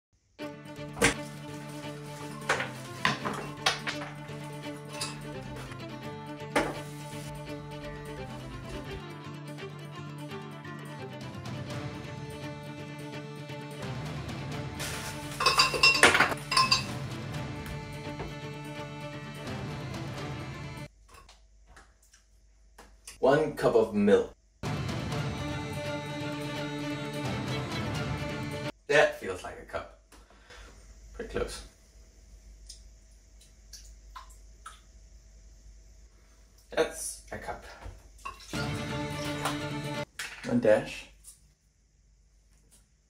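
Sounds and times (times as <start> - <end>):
cup clinking against glass jar: 15.3 - 17.0.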